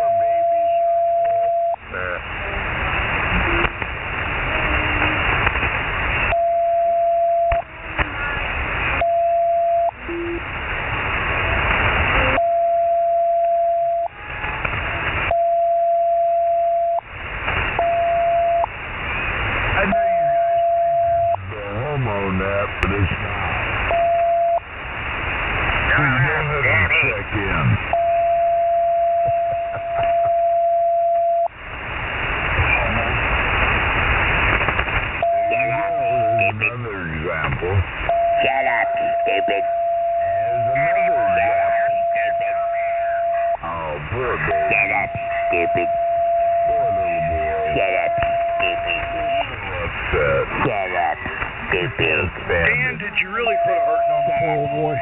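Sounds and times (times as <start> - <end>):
steady radio whistle: 0.0 - 2.0, 19.8 - 21.6, 27.9 - 31.6, 35.2 - 36.8, 38.1 - 50.2, 51.7 - 55.0
radio static hiss: 0.0 - 55.0.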